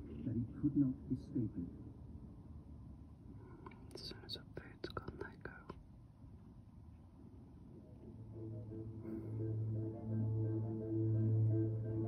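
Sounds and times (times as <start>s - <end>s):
person whispering: 3.9s - 5.8s.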